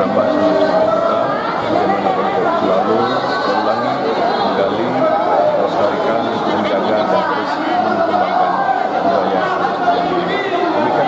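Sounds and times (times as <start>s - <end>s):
crowd chatter in echoing hall: 0.0s - 11.0s.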